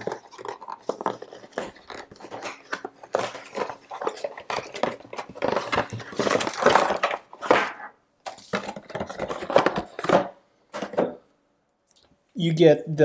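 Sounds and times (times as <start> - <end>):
cardboard box rustling: 0.0 - 10.2.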